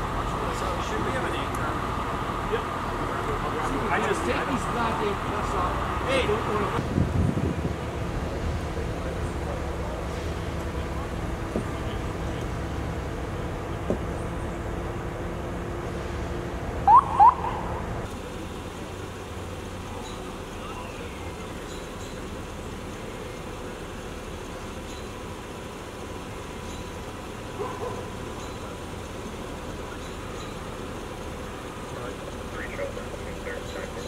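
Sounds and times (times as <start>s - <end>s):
idling vehicle engines hum: 0.0s - 34.0s
roadway background noise: 0.0s - 34.0s.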